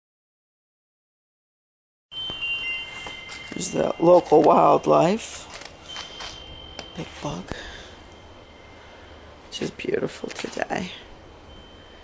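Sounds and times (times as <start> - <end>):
steady high ringing tones: 2.1 - 12.0
faint hiss: 2.2 - 12.0.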